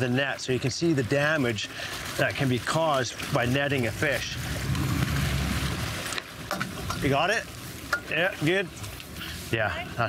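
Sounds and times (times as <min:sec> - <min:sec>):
water noise: 0:00.0 - 0:09.4
wind: 0:00.0 - 0:10.0.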